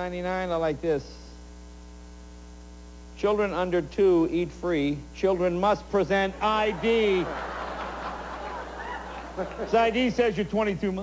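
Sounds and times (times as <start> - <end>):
electrical mains hum: 0.0 - 11.0
faint tape hiss: 0.0 - 11.0.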